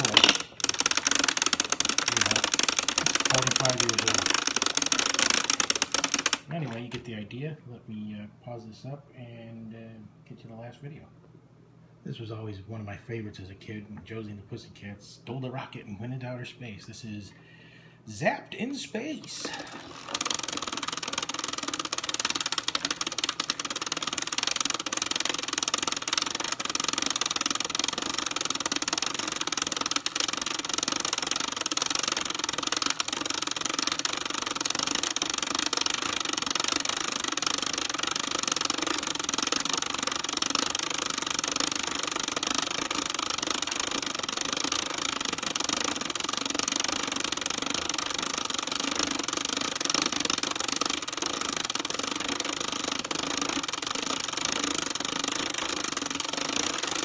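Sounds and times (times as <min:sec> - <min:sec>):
movie projector mechanism clattering: 0:00.0 - 0:07.1, 0:19.2 - 0:57.0.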